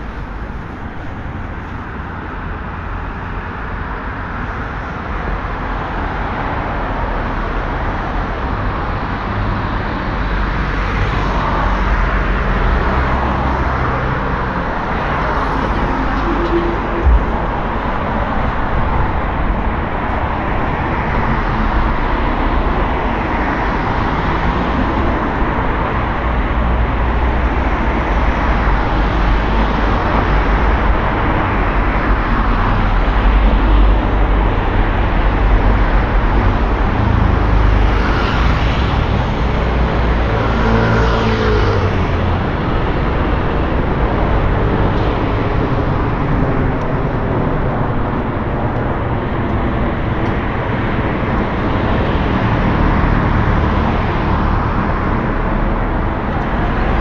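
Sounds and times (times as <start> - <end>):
city road traffic: 0.0 - 57.0.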